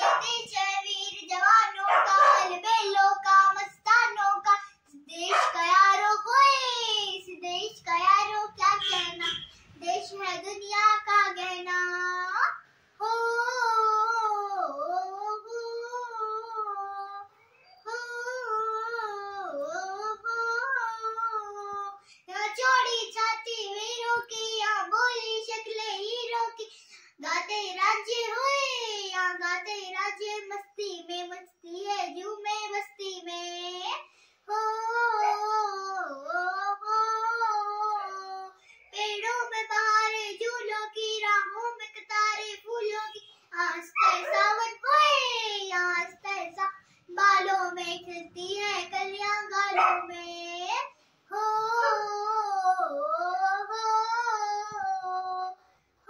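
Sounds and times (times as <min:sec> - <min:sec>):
girl singing unaccompanied: 0:00.0 - 0:56.0.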